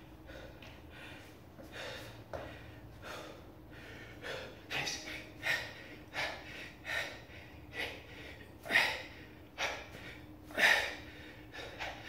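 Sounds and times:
man breathing heavily: 0.0 - 12.0.

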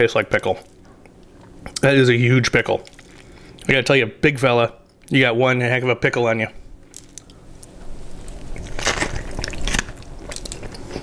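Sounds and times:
person chewing crunchy food: 2.8 - 3.7, 6.8 - 11.0.

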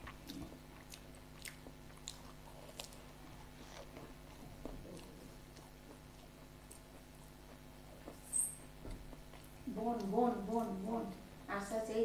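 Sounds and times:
person chewing food: 0.0 - 10.7.

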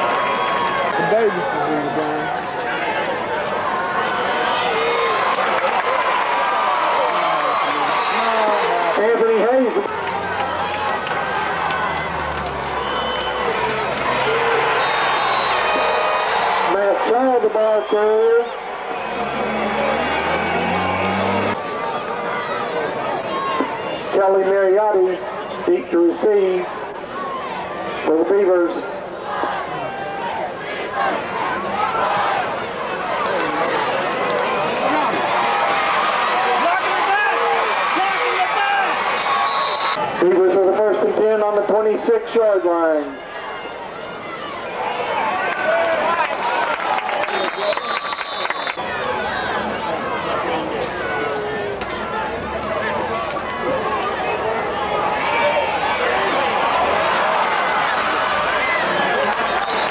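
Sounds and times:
loud shouts: 0.0 - 24.5, 26.6 - 40.3, 42.9 - 59.9
crowd talking and calling out: 0.0 - 59.9.

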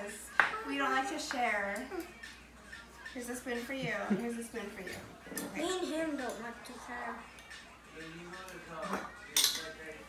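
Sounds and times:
metal spoons scraping in bowls: 8.4 - 9.8.

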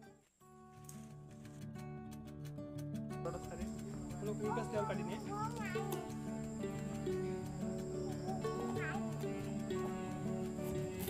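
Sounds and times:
instrumental music: 0.0 - 11.0.

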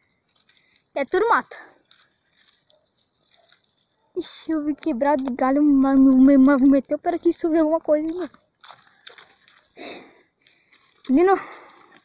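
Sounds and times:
leaves and twigs crackling underfoot: 0.0 - 12.0.

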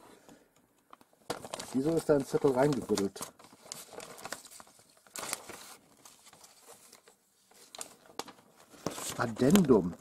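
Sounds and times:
paper and plastic packaging crinkling: 0.8 - 10.0.

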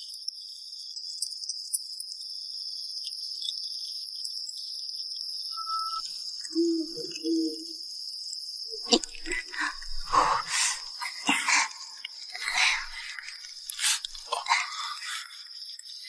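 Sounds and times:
crickets chirring: 0.0 - 16.0.

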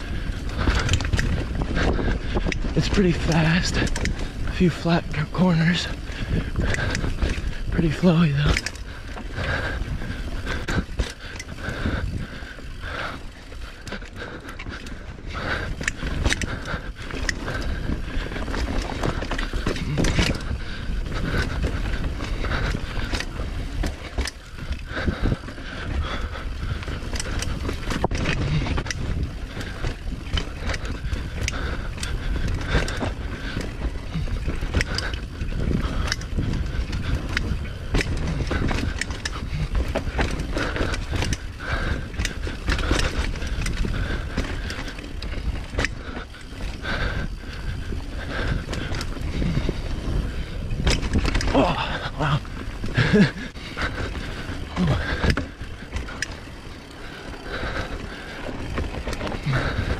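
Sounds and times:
bike clicks and rattles: 0.0 - 59.9
bike tyres rolling over dirt: 0.0 - 59.9.

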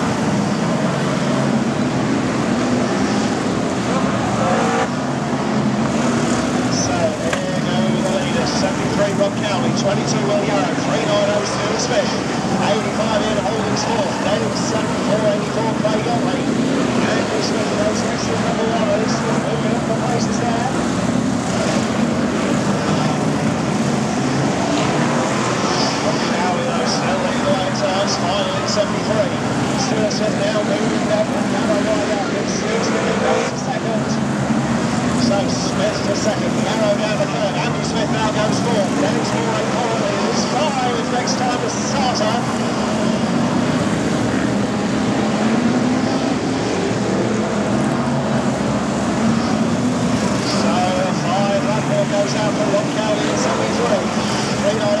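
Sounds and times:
racing car engines: 0.0 - 55.0.

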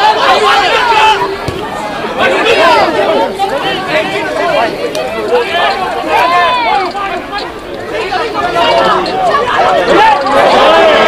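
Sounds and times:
people shouting and calling: 0.0 - 11.0.

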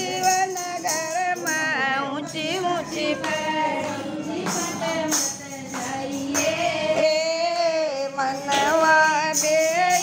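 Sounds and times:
women singing in unison: 0.0 - 10.0
hand-clapping: 3.0 - 6.8.

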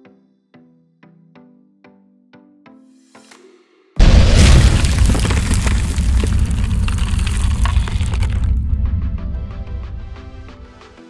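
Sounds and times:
loud cinematic boom: 4.0 - 10.9.

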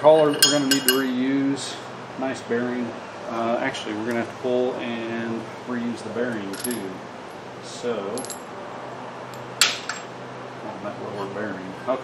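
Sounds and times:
sharp metallic clink: 0.0 - 1.2.

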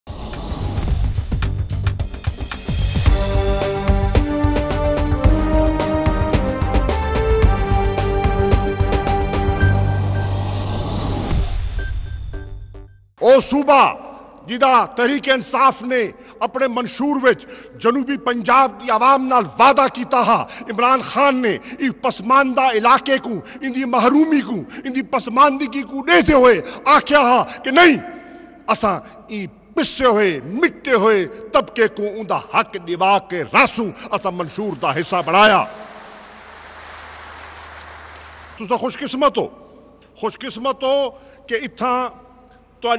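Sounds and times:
news intro music: 0.1 - 13.1
crowd applauding: 34.7 - 38.8.

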